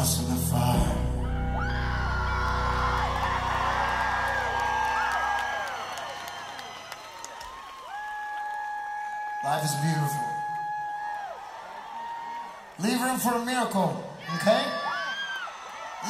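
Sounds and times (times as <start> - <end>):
crowd cheering and whistling: 1.2 - 12.8, 14.2 - 16.0.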